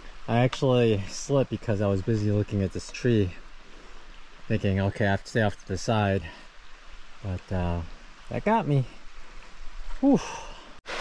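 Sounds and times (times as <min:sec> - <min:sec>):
small waterfall rushing into pool: 0:00.0 - 0:11.0.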